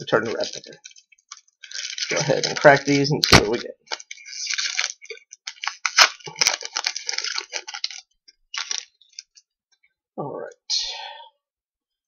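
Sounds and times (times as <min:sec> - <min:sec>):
foil wrapper crinkling and tearing: 0:00.1 - 0:09.5.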